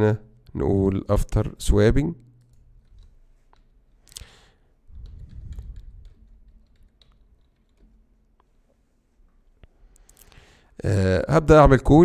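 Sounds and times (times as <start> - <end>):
keyboard and mouse clicks: 2.4 - 4.3, 4.9 - 8.5.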